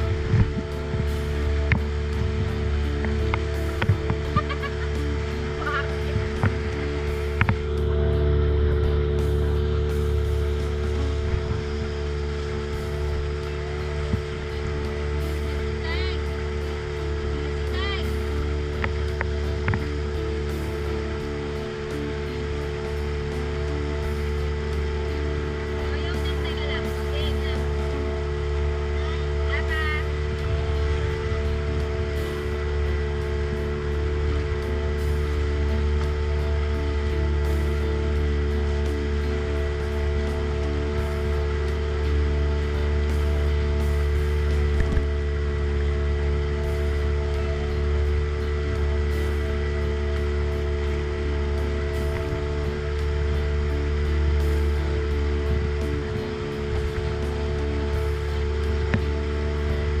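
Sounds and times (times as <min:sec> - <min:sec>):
boat engine droning: 0:00.0 - 1:00.0.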